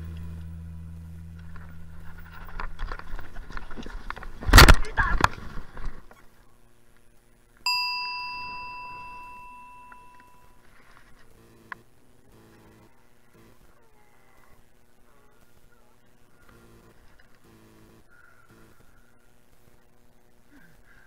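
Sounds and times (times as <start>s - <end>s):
bicycle bell ding: 7.7s - 10.6s.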